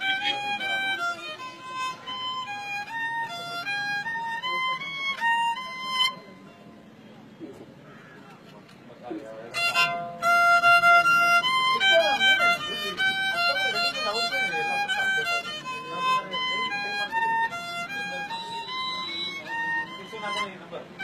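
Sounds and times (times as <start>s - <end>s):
violin slow solo melody: 0.0s - 6.9s, 9.5s - 21.0s.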